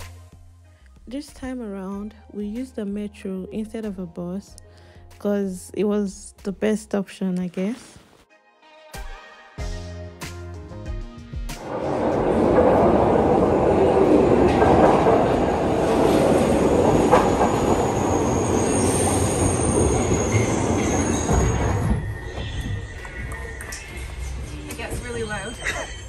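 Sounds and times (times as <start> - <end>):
train wheels rumbling on rails: 11.6 - 26.0
train wheels squealing: 17.0 - 26.0.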